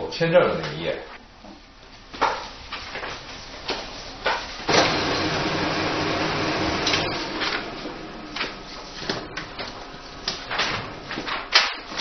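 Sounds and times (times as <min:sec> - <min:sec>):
photocopier whirring: 0:02.8 - 0:12.0.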